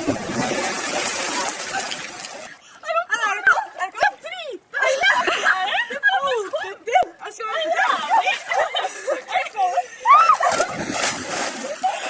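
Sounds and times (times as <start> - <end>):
person splashing into water: 0.0 - 2.4, 10.4 - 11.9.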